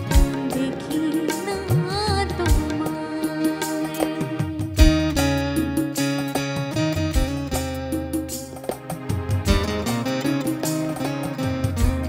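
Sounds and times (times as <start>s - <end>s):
acoustic guitar strumming: 0.0s - 12.0s
keyboard accompaniment: 0.0s - 12.0s.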